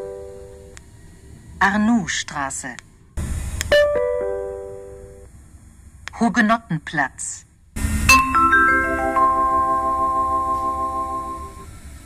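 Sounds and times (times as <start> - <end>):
rumbling noise: 0.9 - 3.7, 7.5 - 9.5
descending electronic chime: 7.8 - 11.8.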